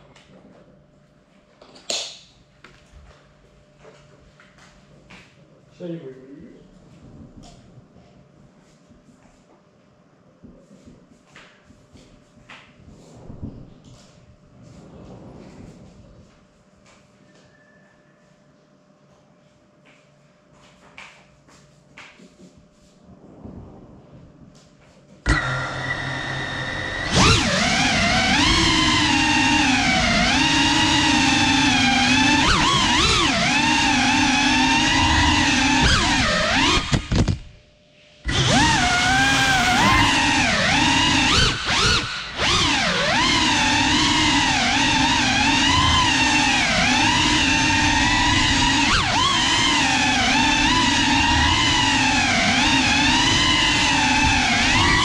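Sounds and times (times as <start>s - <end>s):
drone propellers whining: 25.3s - 37.3s, 38.2s - 55.0s.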